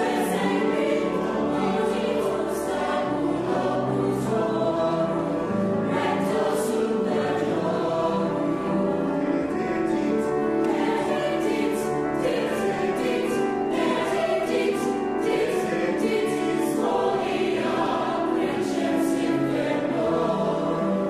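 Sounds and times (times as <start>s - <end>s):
mixed choir singing in harmony: 0.0s - 21.0s.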